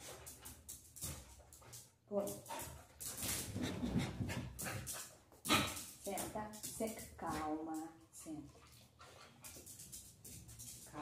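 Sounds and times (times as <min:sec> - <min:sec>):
dog panting: 0:01.6 - 0:05.8, 0:07.2 - 0:09.9.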